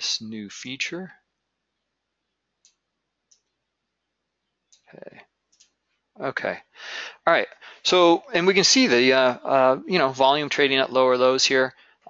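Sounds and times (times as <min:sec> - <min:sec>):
computer mouse clicks: 0:02.6 - 0:03.6, 0:04.6 - 0:05.8.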